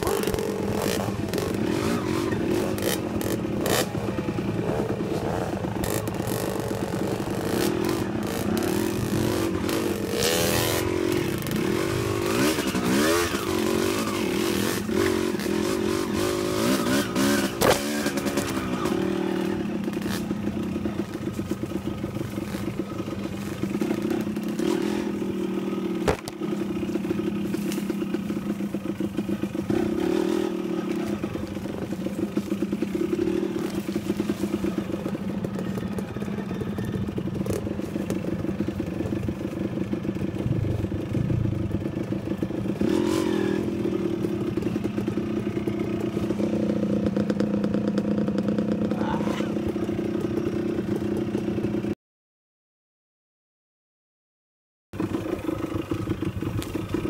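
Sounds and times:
dirt bike engine running: 0.0 - 51.9, 55.0 - 57.0
bike knocking on rough ground: 26.0 - 29.4.

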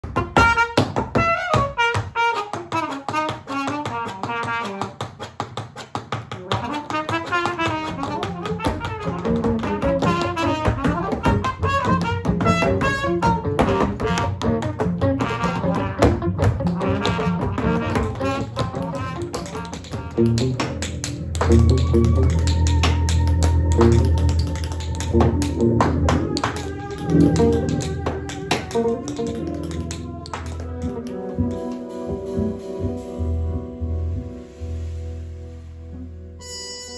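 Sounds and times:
trumpet melody: 0.0 - 5.0, 6.4 - 36.9
tap-dance shoes clicking: 0.0 - 31.8
guitar: 0.0 - 36.9
double bass: 6.6 - 36.9.

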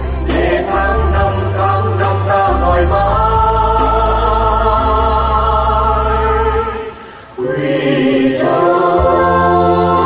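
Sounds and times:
choir singing held notes: 0.0 - 10.0
musical accompaniment: 0.0 - 10.0.

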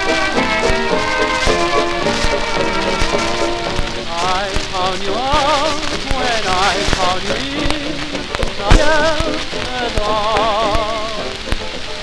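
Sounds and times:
dance band music on record: 0.0 - 12.0
record crack clicks: 0.0 - 12.0
record surface crackle: 0.0 - 12.0.

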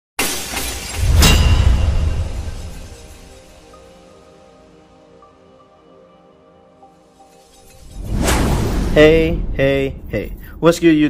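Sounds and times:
glass breaking: 0.2 - 3.8
deep rumble: 8.0 - 11.0.

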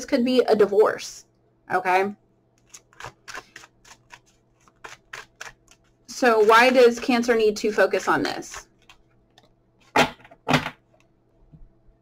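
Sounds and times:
cards shuffling: 2.6 - 7.4, 8.0 - 9.5.

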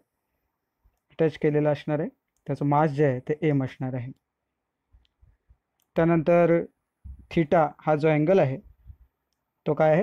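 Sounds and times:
man speaking: 1.1 - 4.2, 5.9 - 8.8, 9.6 - 10.0
faint soft clicks: 4.9 - 6.0, 8.9 - 9.5.

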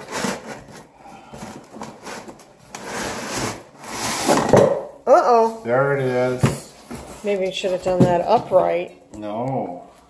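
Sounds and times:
cardboard scraping and rustling: 0.0 - 4.6.

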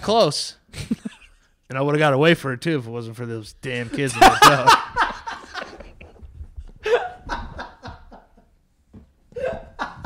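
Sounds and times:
man laughing hard: 3.9 - 6.2, 6.8 - 8.4, 9.3 - 10.0.

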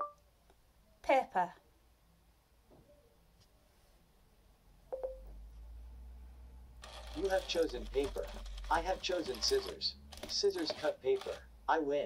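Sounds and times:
low electrical hum: 3.4 - 12.0.

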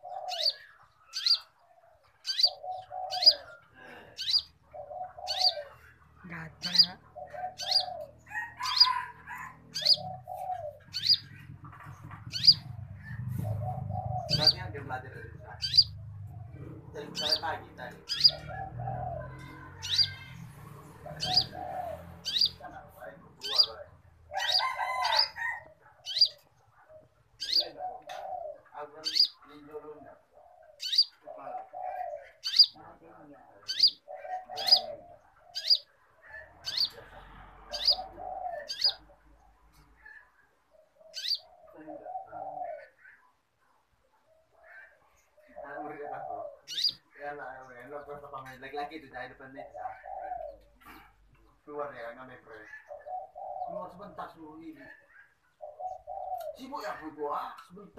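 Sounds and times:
songbird chirping: 0.0 - 57.9.

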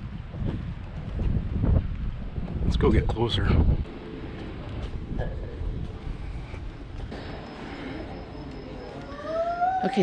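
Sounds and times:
wind rumble on microphone: 0.0 - 7.1
faint voices of people: 7.5 - 10.0.

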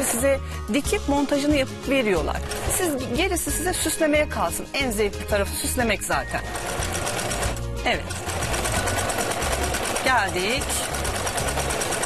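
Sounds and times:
electric sewing machine stitching: 0.0 - 0.3, 6.2 - 12.0.

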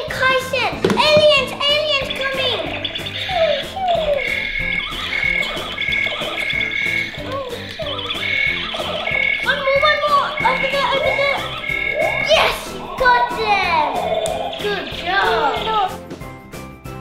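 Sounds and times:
background music: 0.0 - 17.0
high electronic beep: 3.9 - 7.2, 7.8 - 14.7.

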